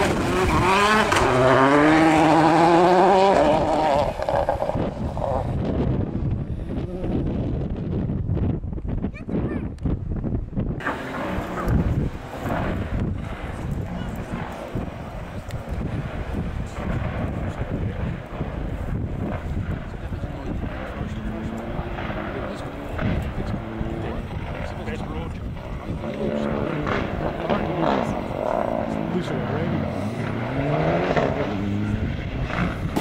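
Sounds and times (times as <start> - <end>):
distant rally car engines: 0.0 - 8.0, 10.8 - 33.0.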